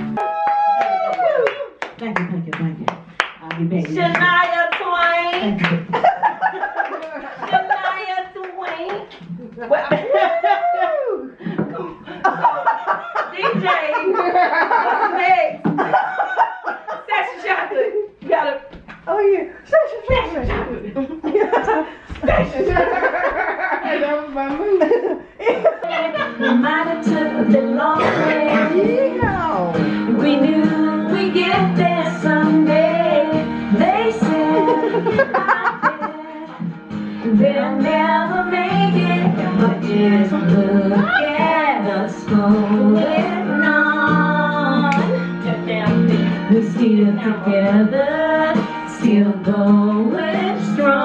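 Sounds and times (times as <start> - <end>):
hands clapping a beat: 0.2 - 6.0, 6.8 - 10.1, 18.7 - 19.1, 44.9 - 45.2
women talking and laughing: 3.6 - 29.8, 34.3 - 36.6
music playing: 25.8 - 51.0
woman singing long notes: 25.9 - 29.2.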